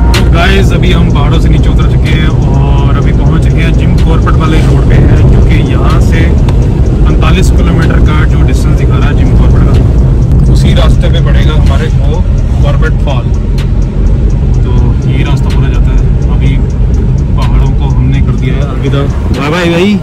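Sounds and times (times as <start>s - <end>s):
car cabin road and engine rumble: 0.0s - 20.0s
man talking: 0.1s - 13.4s, 14.5s - 16.7s, 17.3s - 20.0s.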